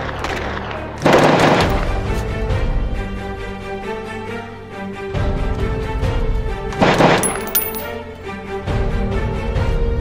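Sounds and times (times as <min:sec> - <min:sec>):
background music sustained tones: 0:01.7 - 0:10.0.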